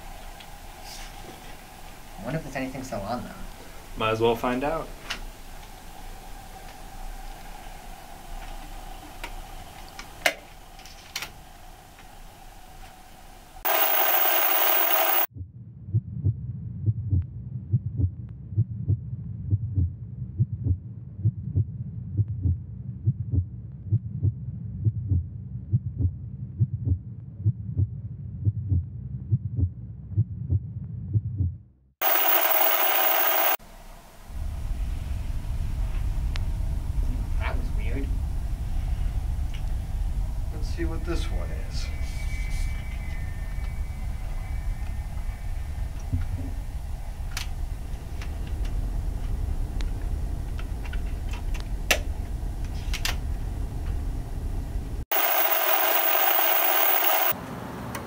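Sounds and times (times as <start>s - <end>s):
loud video static: 13.7s - 15.3s, 32.0s - 33.6s, 55.1s - 57.3s
steady low hum: 32.0s - 57.4s.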